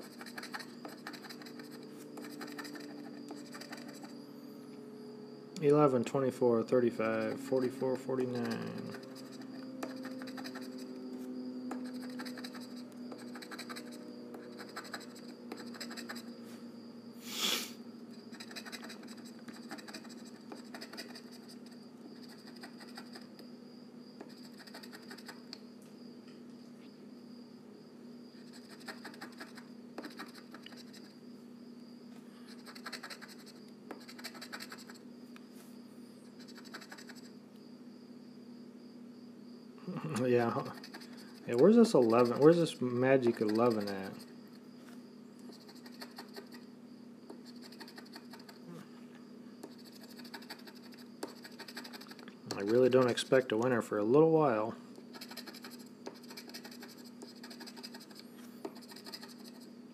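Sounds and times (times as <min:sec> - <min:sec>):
scratch-off ticket scraping: 0:00.0 - 0:04.1, 0:07.0 - 0:10.9, 0:11.7 - 0:16.3, 0:18.3 - 0:23.3, 0:24.3 - 0:25.4, 0:28.4 - 0:31.0, 0:32.6 - 0:35.0, 0:36.4 - 0:37.2, 0:40.4 - 0:44.2, 0:45.6 - 0:46.6, 0:47.4 - 0:48.6, 0:49.7 - 0:53.5, 0:55.1 - 0:59.7
steady low hum: 0:00.0 - 0:59.9.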